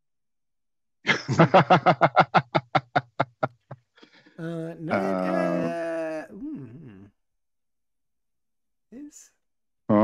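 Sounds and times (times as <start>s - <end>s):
man laughing heartily: 1.1s - 3.8s.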